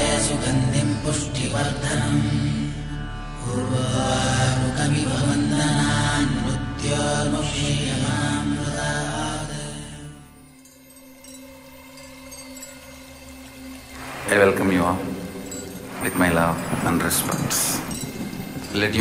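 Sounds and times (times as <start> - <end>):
steady low drone: 0.0 - 19.0.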